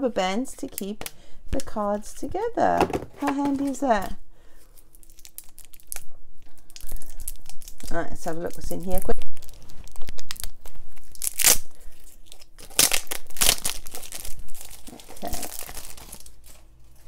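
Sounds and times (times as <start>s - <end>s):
cellophane crinkling and ripping: 3.2s - 17.0s.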